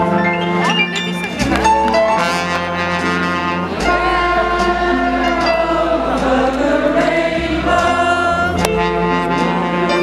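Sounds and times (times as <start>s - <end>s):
big band son music: 0.0s - 10.0s
chorus of voices singing: 3.6s - 10.0s.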